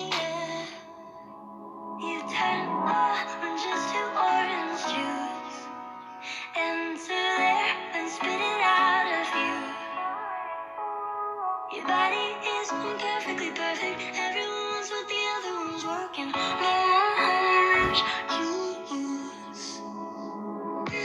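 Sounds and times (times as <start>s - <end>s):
pop song with woman singing: 0.0s - 1.4s, 2.0s - 21.0s.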